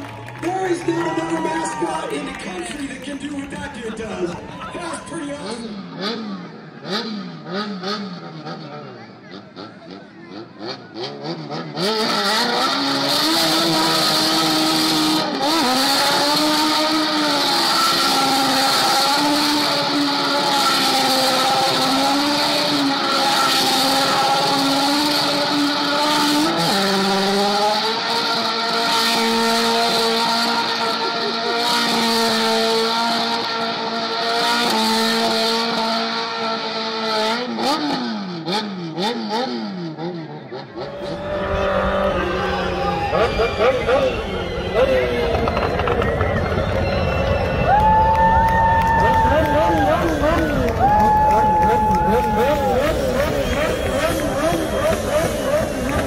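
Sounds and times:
car engine at high revs: 0.0s - 56.0s.

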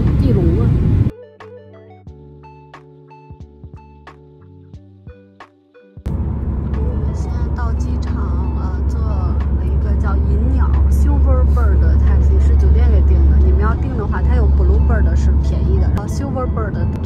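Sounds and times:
road and engine rumble in car: 0.0s - 1.1s, 6.1s - 17.0s.

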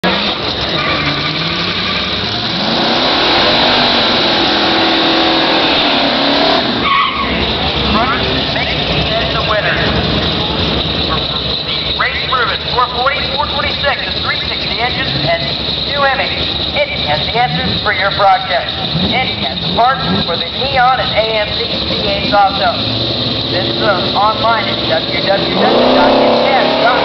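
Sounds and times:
car engine revving: 0.0s - 27.0s.

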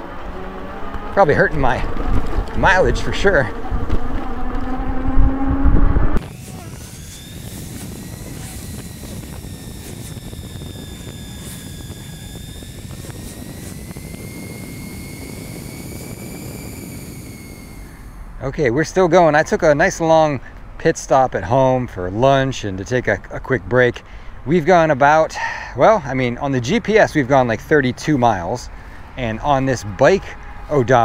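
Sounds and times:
electric motor whine: 0.0s - 18.4s
loud wind rumble: 0.0s - 20.8s
tyres and wind rushing: 0.0s - 31.0s.

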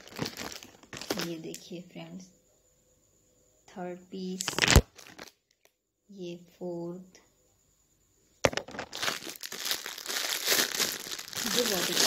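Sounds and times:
plastic bag crinkling: 0.0s - 1.4s, 4.4s - 5.3s, 8.5s - 12.0s.

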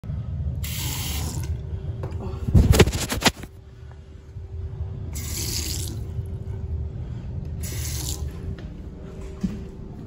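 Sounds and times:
steady low rumble: 0.0s - 0.7s, 1.4s - 10.0s.

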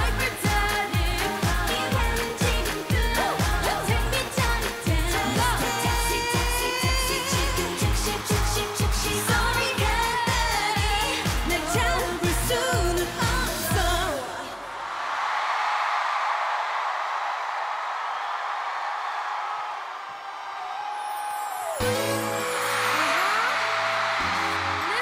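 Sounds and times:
dance beat: 0.0s - 14.1s
women singing: 0.0s - 14.7s
crowd cheering and screaming: 14.6s - 25.0s.

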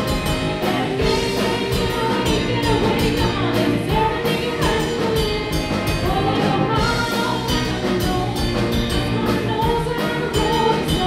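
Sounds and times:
bass guitar: 0.0s - 11.0s
drum kit beat: 0.0s - 11.0s
electric guitars: 0.0s - 11.0s.

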